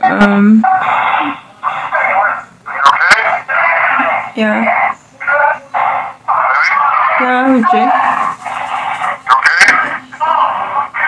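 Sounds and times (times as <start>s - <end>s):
speech through a telephone: 1.6s - 8.3s, 9.0s - 11.0s.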